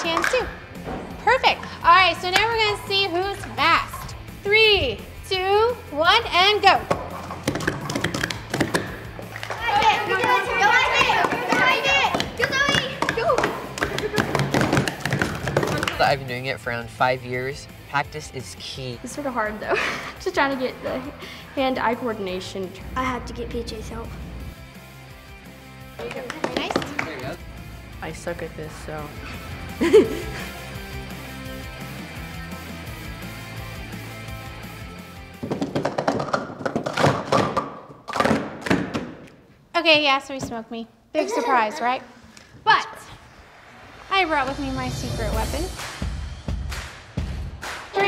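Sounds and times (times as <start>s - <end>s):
plastic cups clattering on table: 0.0s - 0.6s, 6.8s - 9.6s, 10.2s - 16.0s, 35.4s - 39.2s
background music: 0.0s - 40.3s, 41.0s - 48.0s.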